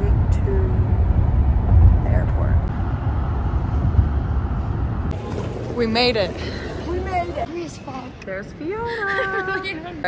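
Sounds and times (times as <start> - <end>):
car driving at highway speed: 0.0 - 6.3.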